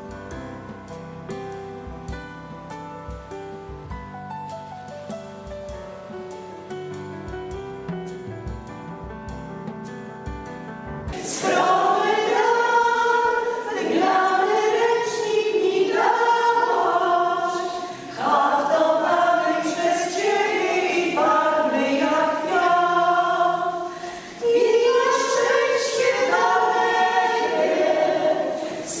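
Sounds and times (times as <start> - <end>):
women's folk group singing: 11.1 - 29.0.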